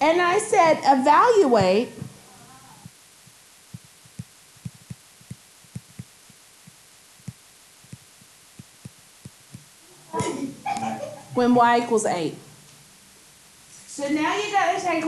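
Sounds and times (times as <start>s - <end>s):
person speaking: 0.0s - 2.9s, 9.6s - 12.4s
stylus tapping on surface: 2.8s - 10.3s.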